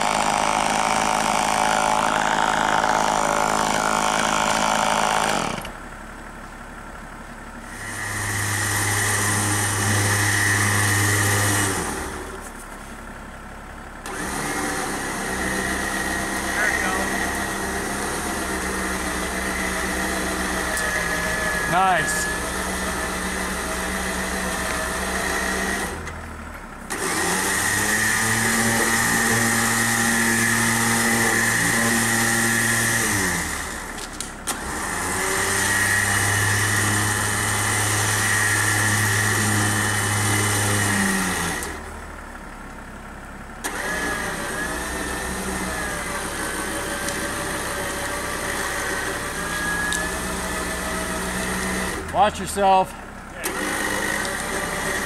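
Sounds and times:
engine idling and revving: 0.0 - 55.0.

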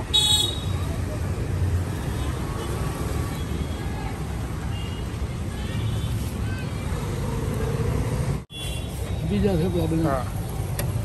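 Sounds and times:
rumble of passing vehicles: 0.0 - 11.0.

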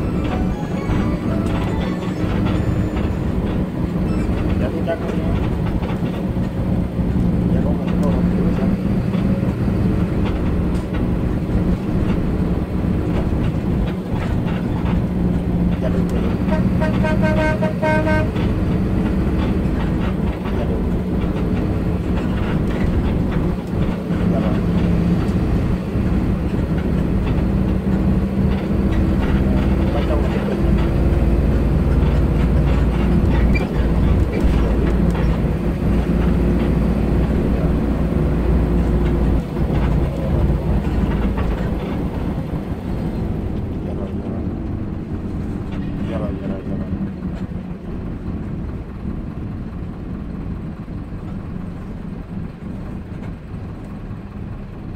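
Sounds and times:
bus engine drone: 0.0 - 54.9
road noise: 0.0 - 54.9
vehicle horn: 16.3 - 18.7.

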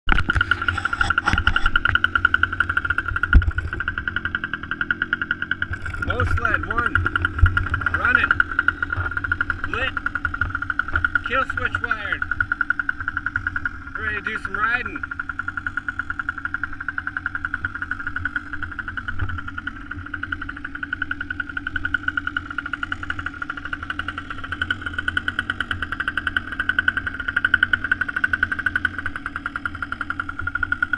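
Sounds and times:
small engine idling: 0.1 - 30.9.

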